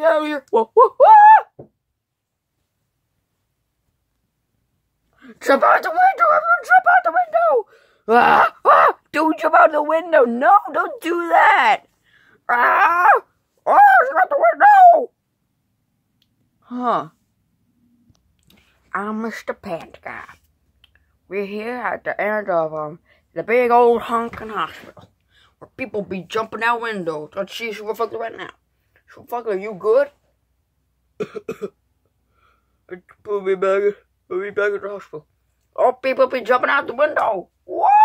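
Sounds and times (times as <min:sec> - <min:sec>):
child coughing: 0:31.2 - 0:31.8.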